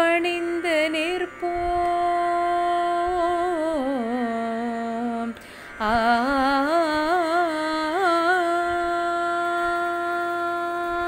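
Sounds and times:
woman singing a long note: 0.0 - 11.0.

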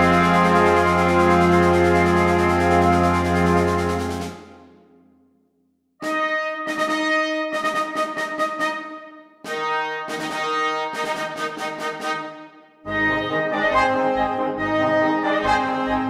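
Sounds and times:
symphonic band playing chords: 0.0 - 4.7, 12.9 - 16.0.

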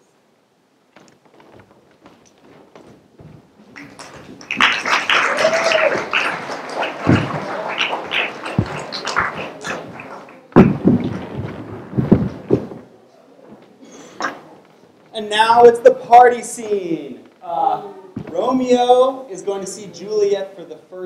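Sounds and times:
heavy thuds: 0.9 - 4.7, 6.8 - 12.9, 18.2 - 19.0
footsteps and knocks on stage: 0.9 - 5.6, 6.6 - 12.9, 18.2 - 18.8.

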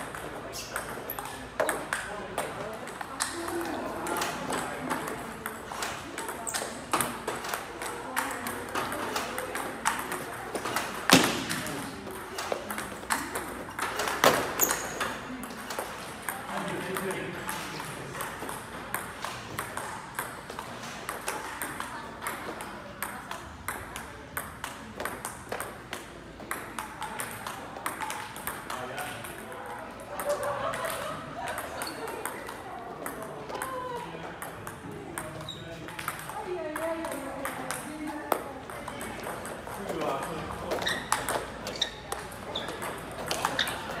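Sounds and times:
ping pong ball clicking: 11.5 - 17.2, 18.2 - 30.9, 31.5 - 33.8, 34.4 - 43.8.

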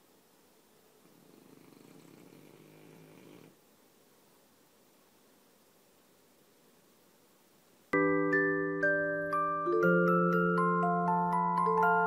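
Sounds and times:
dog snoring: 1.0 - 3.6.

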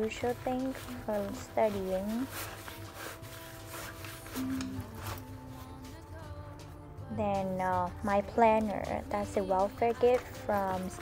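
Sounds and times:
fabric backpack rustling: 0.0 - 5.9
soft background music: 0.0 - 11.0.

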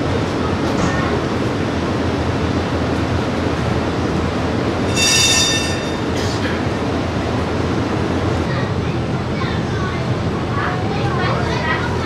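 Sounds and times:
tram rolling rumble: 0.0 - 12.0
high-pitched wheel squeal: 4.9 - 6.0.

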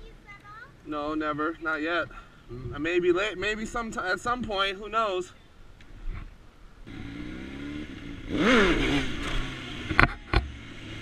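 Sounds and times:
motorcycle engine pulling away: 6.9 - 11.0.

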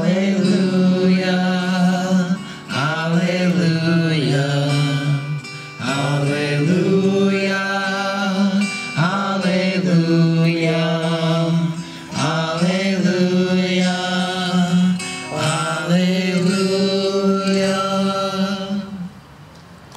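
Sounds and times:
man singing: 0.0 - 19.2
acoustic guitar: 0.0 - 19.3.

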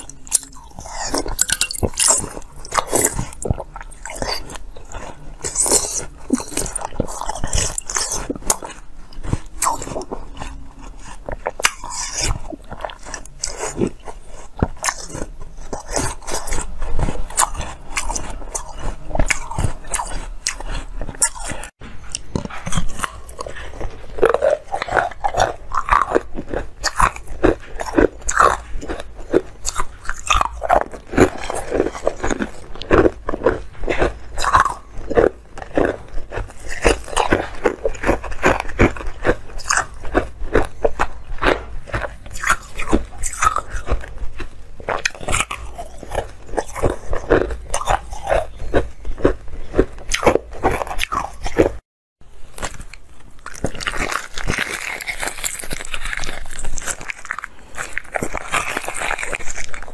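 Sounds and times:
chewing: 0.0 - 51.8, 52.5 - 59.9
ice crunching between teeth: 0.0 - 51.8, 52.4 - 59.9.

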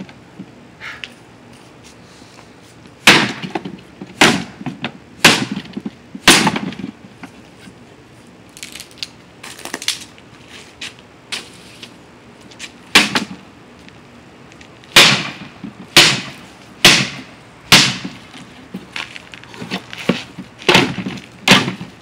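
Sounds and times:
stick whacking wooden box: 3.0 - 7.3, 12.9 - 13.4, 14.9 - 18.2, 19.7 - 22.0.

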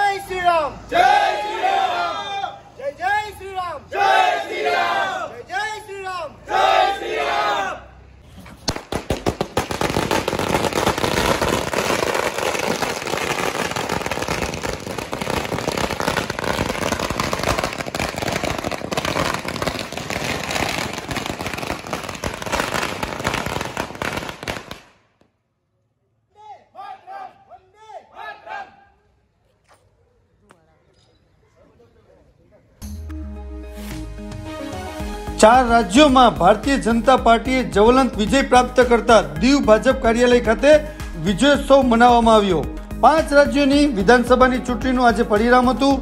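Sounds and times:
crowd shouting slogans: 0.8 - 2.8, 3.8 - 5.5, 6.3 - 8.0, 26.8 - 29.0
firecrackers bursting: 8.2 - 25.3.

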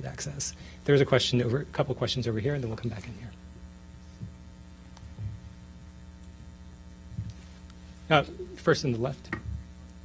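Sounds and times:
electrical mains hum: 0.0 - 10.0
faint low thumps: 4.2 - 7.4.

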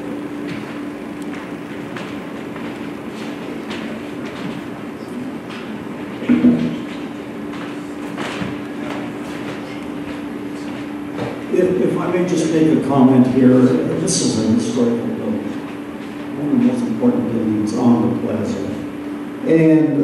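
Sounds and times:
steady hum: 0.0 - 20.0.

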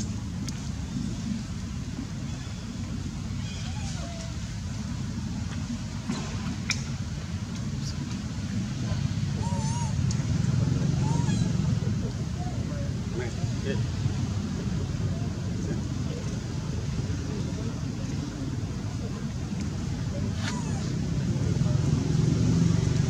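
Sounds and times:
low outdoor rumble: 0.0 - 23.0
faint squeaky calls: 3.4 - 4.4, 9.4 - 10.0, 10.9 - 11.9, 20.4 - 21.0.

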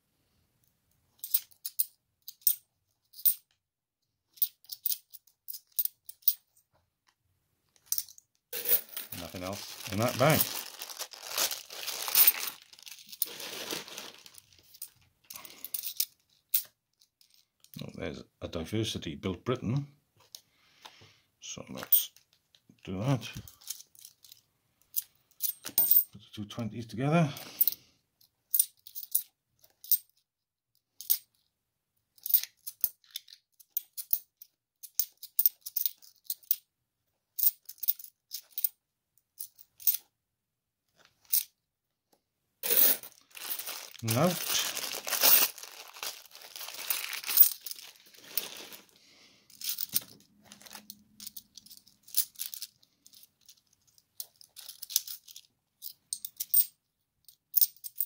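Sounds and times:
coins clinking: 1.2 - 3.4, 7.9 - 16.7, 42.6 - 48.9, 49.5 - 53.6, 54.2 - 56.7
plastic bag crinkling and tearing: 8.6 - 14.7, 42.6 - 49.0, 49.8 - 50.9.

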